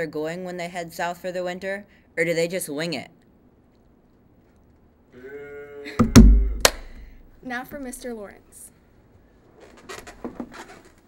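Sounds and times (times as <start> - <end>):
rimshot drum hits: 6.0 - 7.2.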